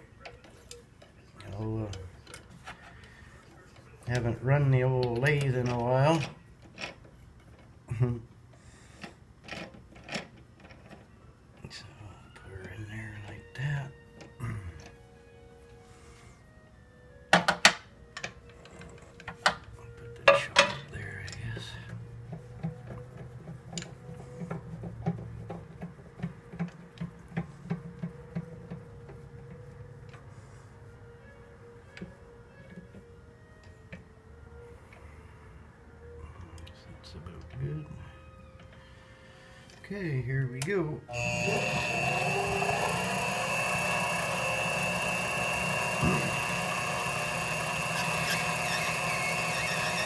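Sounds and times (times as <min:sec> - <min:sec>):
metal lathe parts clicking: 0:41.2 - 0:50.0.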